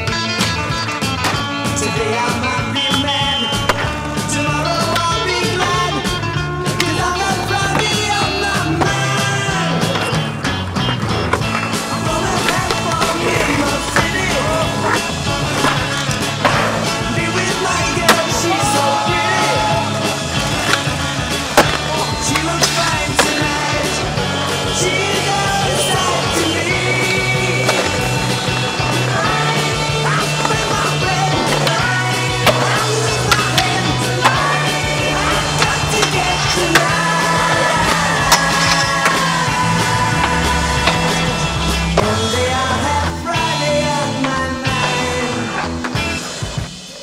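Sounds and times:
rock music: 0.0 - 47.0
skateboard wheels rolling: 0.0 - 47.0
skateboard pops and impacts: 21.5 - 23.4.

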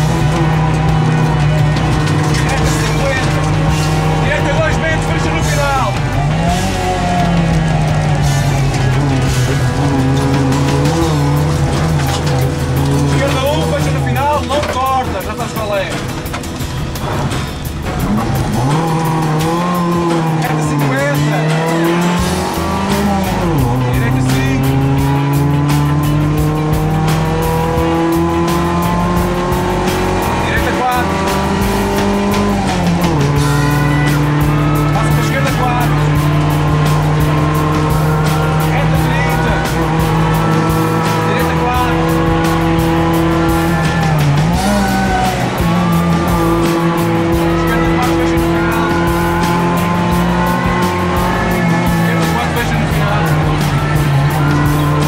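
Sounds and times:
car engine revving under load: 0.0 - 55.0.

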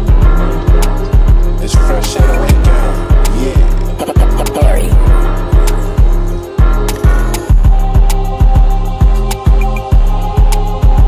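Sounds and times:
instrumental trap beat: 0.0 - 11.0.

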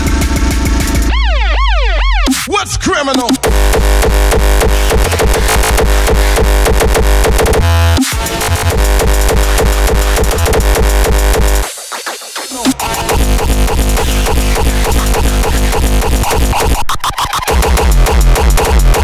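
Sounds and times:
hardstyle dance music: 0.0 - 19.0
heavy kick drum: 2.2 - 11.6.

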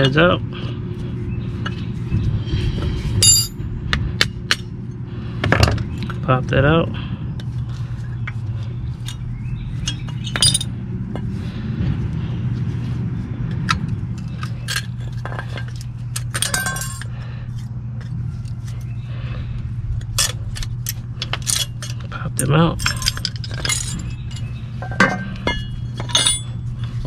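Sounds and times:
steady low hum: 0.0 - 27.0
rattling clinks: 3.2 - 3.6, 9.8 - 10.8, 14.6 - 17.1, 20.0 - 26.6
metal clinking and tapping: 9.9 - 10.7, 14.7 - 17.1, 22.8 - 26.6.

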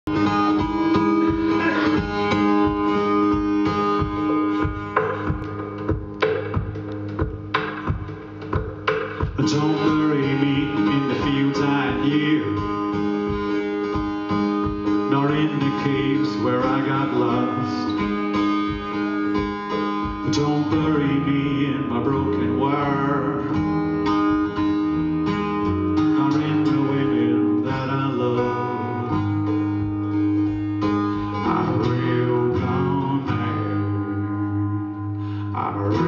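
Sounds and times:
acoustic guitar strumming: 0.0 - 36.0
man singing: 0.1 - 2.9, 9.4 - 13.0, 14.9 - 18.1, 20.2 - 23.9, 25.9 - 29.6, 31.2 - 34.4, 35.4 - 36.0.

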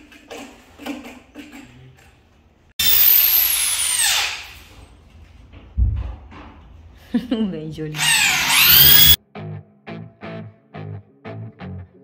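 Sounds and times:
electric drill whining: 2.8 - 4.6, 8.0 - 9.2
dull thump: 5.8 - 6.5.

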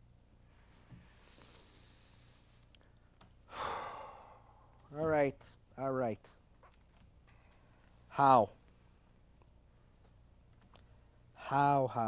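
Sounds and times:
man sighing: 3.5 - 4.7.

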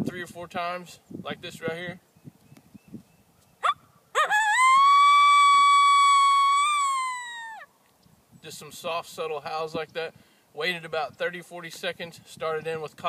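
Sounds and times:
coyote howler call: 3.6 - 7.7.

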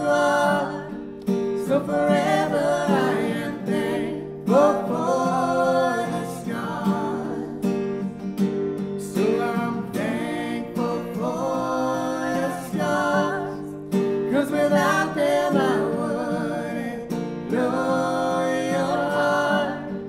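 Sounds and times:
man and woman singing: 0.0 - 7.8, 9.0 - 20.0
strummed acoustic guitar: 0.0 - 20.0.

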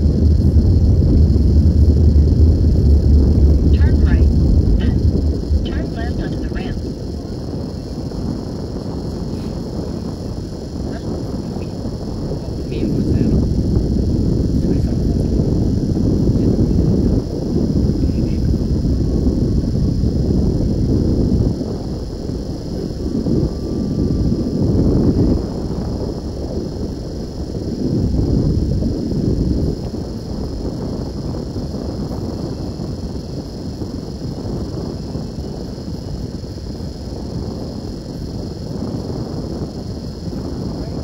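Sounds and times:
road traffic rumble: 0.0 - 30.6
wind buffeting microphone: 0.0 - 41.0.

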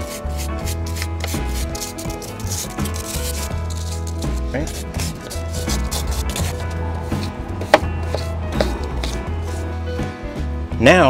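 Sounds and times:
hand brush sweeping: 0.0 - 9.8
background music with bass line: 0.0 - 11.0.

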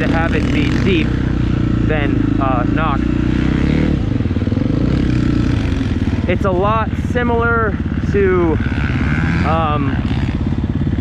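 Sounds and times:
dirt bike engine idling: 0.0 - 11.0.

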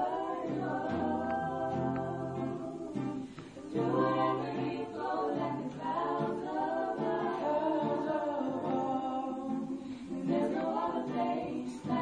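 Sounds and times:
vocal group singing in harmony: 0.0 - 12.0.

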